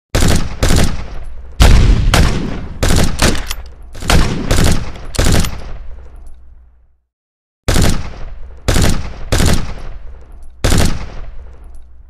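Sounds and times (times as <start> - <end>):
echoing gunshots: 0.2 - 5.9, 7.7 - 11.6.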